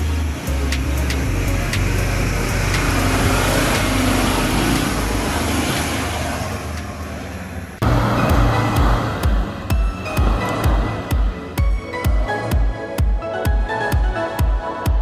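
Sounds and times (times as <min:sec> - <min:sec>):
music with steady beat: 0:00.0 - 0:05.2, 0:07.8 - 0:15.0
vehicle engine under load: 0:00.0 - 0:12.6.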